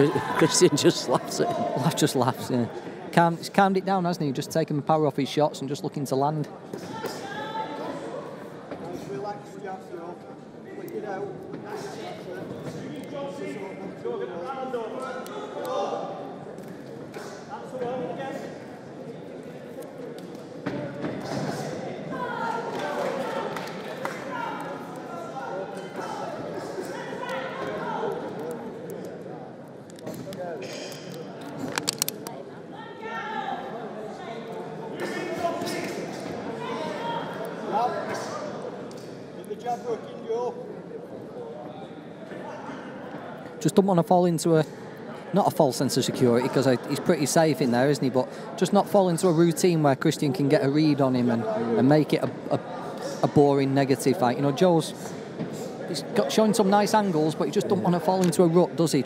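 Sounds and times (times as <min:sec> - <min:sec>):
crowd shouting: 0:00.0 - 0:02.0.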